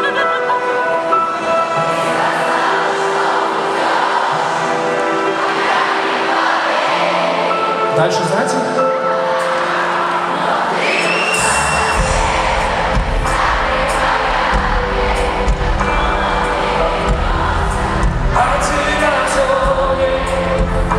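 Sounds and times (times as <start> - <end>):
crowd singing along: 0.0 - 20.9
live concert music: 0.0 - 20.9
crowd cheering: 9.1 - 19.2.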